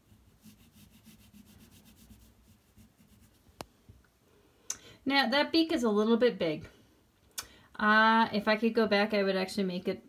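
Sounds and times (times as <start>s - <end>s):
crayon scratching on paper: 0.0s - 3.4s.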